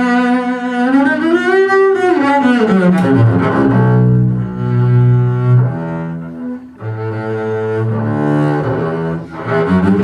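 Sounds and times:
bowed double bass low notes: 0.0 - 10.0.

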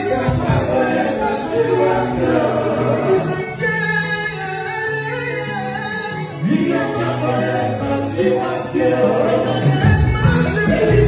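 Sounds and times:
electric guitars: 0.0 - 11.0
voices singing together: 0.0 - 11.0
bass line: 7.0 - 11.0.

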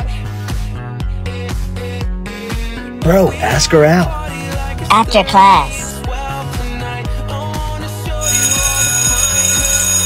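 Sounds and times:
background music with steady beat: 0.0 - 10.0
school bell ringing: 8.2 - 10.0.

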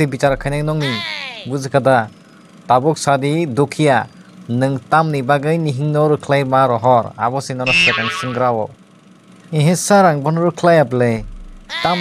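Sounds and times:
person speaking: 0.0 - 1.8, 7.6 - 8.6, 11.7 - 12.0.

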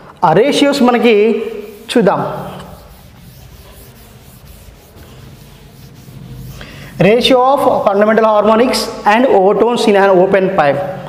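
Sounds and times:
cloth rubbing on chalkboard: 1.2 - 8.1.

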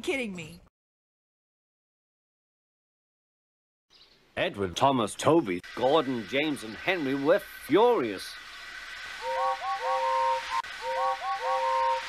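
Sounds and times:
steam locomotive whistles tooting: 9.2 - 12.0.

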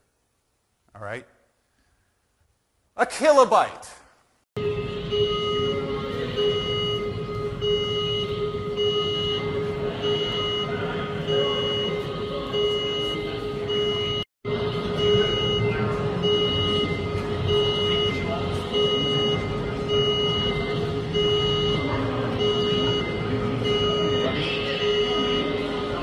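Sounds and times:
high electronic beep: 4.6 - 26.0.

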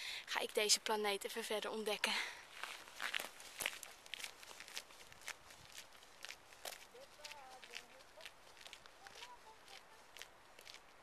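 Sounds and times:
faint footsteps on gravel: 2.0 - 11.0.

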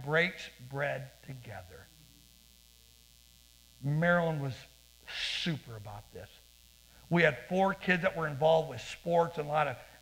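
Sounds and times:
man speaking: 0.0 - 1.9, 3.8 - 6.4, 7.1 - 9.9
faint mains hum: 0.0 - 10.0.

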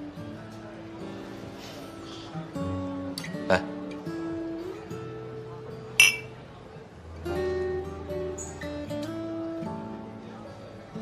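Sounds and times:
soft guitar music: 0.0 - 11.0
glass tumblers clinking: 6.0 - 6.3.

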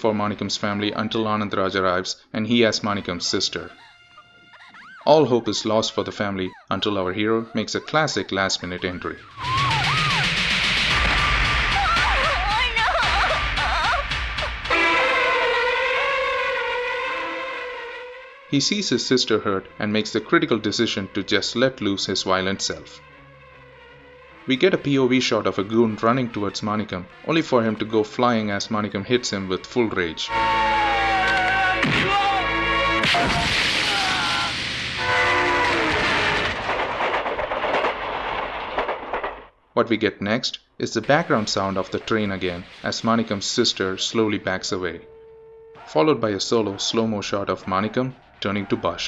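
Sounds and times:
train rumbling past: 14.2 - 18.2
train horn chord: 14.6 - 18.5, 32.4 - 33.1, 35.0 - 36.4, 44.1 - 45.9
long held siren-like tone: 14.7 - 18.5, 44.0 - 47.2.

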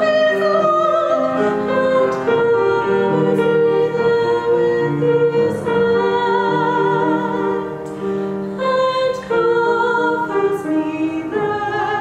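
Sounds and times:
woman singing: 0.0 - 7.9, 8.5 - 12.0
grand piano: 0.0 - 12.0.

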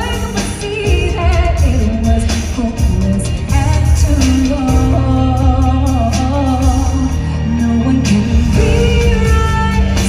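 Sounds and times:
keyboard and band accompaniment: 0.0 - 10.0
woman singing with vibrato: 0.0 - 10.0.

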